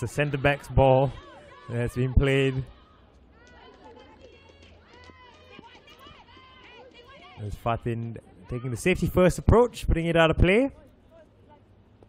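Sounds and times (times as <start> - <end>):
footballers shouting: 0.0 - 11.7.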